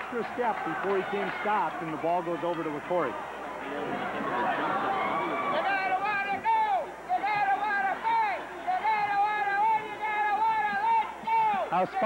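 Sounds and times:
gym crowd noise: 0.0 - 12.0.

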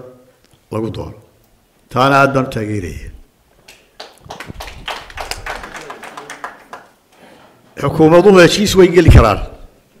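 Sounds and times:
scattered hand claps: 3.6 - 7.0.

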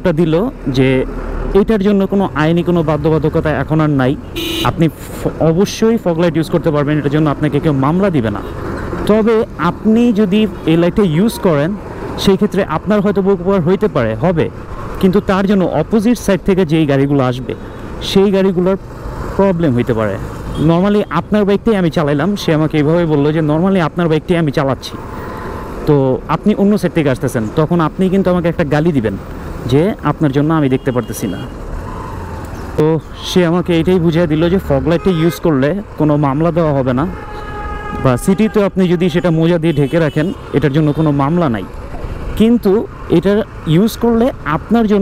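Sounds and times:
man talking: 0.0 - 18.8, 19.4 - 25.0, 25.8 - 31.5, 32.8 - 37.2, 38.0 - 41.8, 42.4 - 45.0
person speaking: 0.0 - 31.5, 32.8 - 45.0
road and traffic noise: 0.0 - 45.0.

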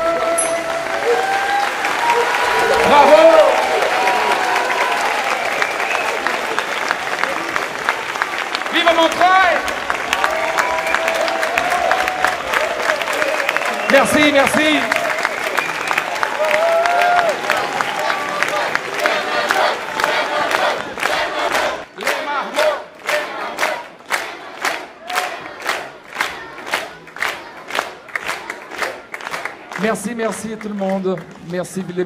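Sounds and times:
shouts and voices: 0.0 - 5.0
crowd applauding and cheering: 0.0 - 32.0
rhythmic clapping in unison: 0.0 - 32.0.

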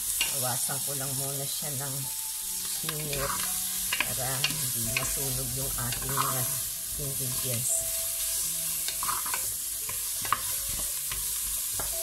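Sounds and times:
vegetables sizzling in hot oil: 0.0 - 12.0
wooden spoon scraping a pot: 2.7 - 5.2, 5.9 - 6.6, 8.2 - 12.0.

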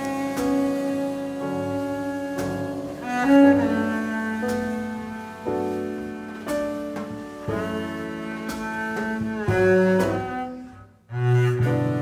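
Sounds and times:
double bass: 0.0 - 12.0
drums: 0.0 - 12.0
piano: 0.0 - 12.0.

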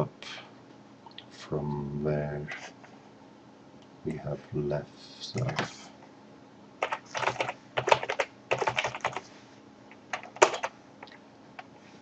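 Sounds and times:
typing on computer keyboard: 6.8 - 9.2, 10.1 - 11.2.

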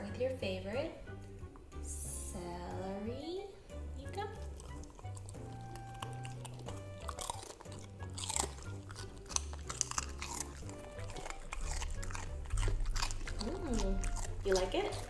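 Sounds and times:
background music: 0.0 - 15.0
puppy chewing celery: 4.0 - 15.0.

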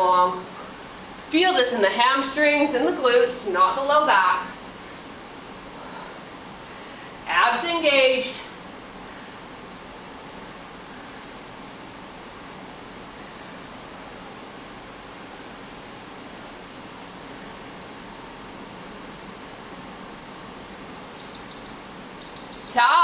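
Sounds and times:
ventilation noise: 0.0 - 23.0
interval timer beeps: 21.2 - 22.8.

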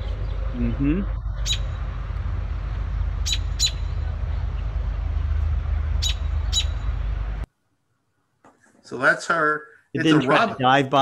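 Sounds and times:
steady low rumble: 0.0 - 7.5
robin alarm calls: 1.3 - 1.8, 3.2 - 4.0, 6.0 - 7.0.

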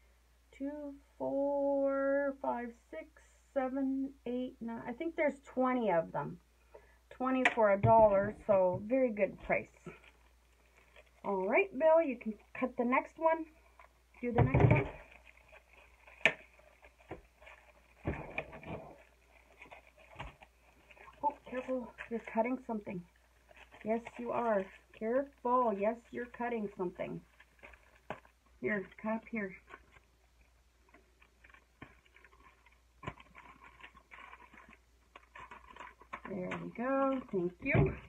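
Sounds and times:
packaging rustling: 9.4 - 38.0.

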